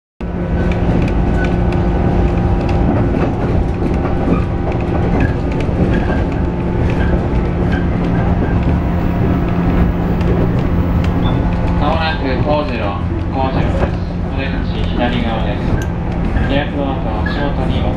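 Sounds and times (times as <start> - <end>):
low hum: 0.2 - 17.9
train wheels rumbling on rails: 0.2 - 17.9.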